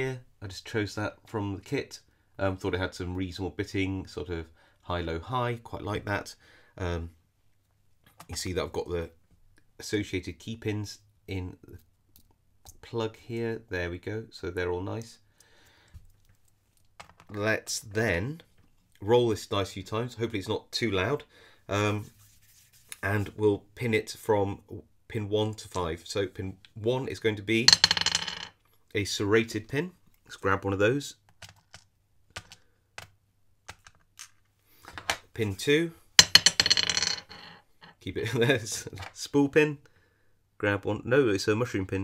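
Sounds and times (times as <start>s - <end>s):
faint handling sounds: 21.9s - 23.4s.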